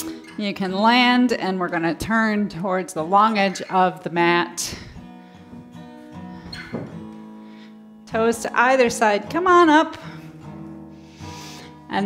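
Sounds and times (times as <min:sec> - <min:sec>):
acoustic guitar plucked: 0:00.0 - 0:12.0.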